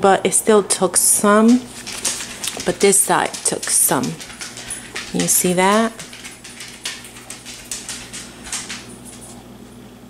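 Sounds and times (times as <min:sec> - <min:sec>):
steady low hum: 0:00.0 - 0:10.0
stiff paper rustling and crackling: 0:01.4 - 0:09.4.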